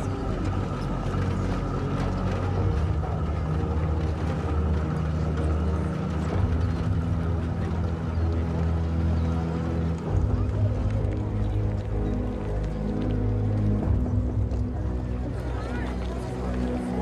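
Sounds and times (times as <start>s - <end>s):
low drone-like music: 0.0s - 17.0s.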